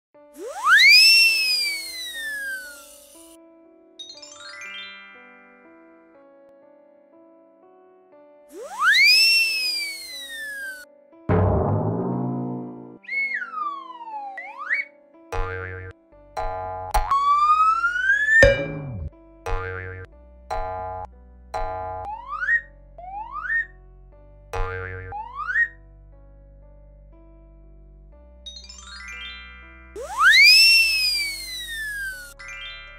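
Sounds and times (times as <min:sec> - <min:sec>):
soft background music: 0:00.2 - 0:09.4, 0:10.0 - 0:32.9
cartoon warbling effect: 0:00.4 - 0:03.0, 0:08.6 - 0:10.8, 0:13.0 - 0:15.9, 0:17.0 - 0:19.1, 0:22.0 - 0:23.7, 0:24.6 - 0:25.7, 0:30.0 - 0:32.4
slide whistle swooping: 0:00.4 - 0:03.2, 0:08.6 - 0:10.8, 0:13.0 - 0:14.9, 0:17.1 - 0:19.1, 0:30.0 - 0:32.4
hiss: 0:00.4 - 0:03.3
rising boing-like pitch glide: 0:11.3 - 0:13.0, 0:15.4 - 0:23.7, 0:24.6 - 0:25.7, 0:30.0 - 0:30.6.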